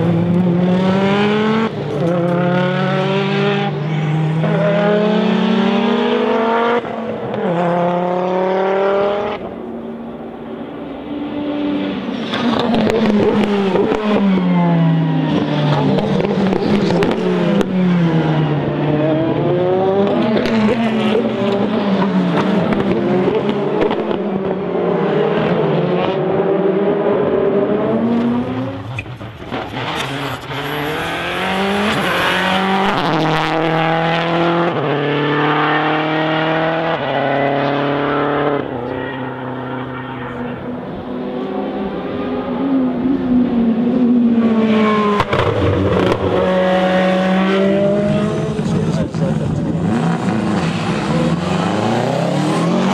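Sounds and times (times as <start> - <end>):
racing car engines revving: 0.0 - 52.9.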